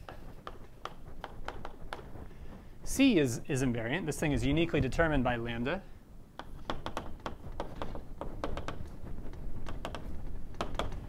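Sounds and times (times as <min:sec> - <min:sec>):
chalk tapping and scratching: 0:00.0 - 0:03.4, 0:06.4 - 0:11.0.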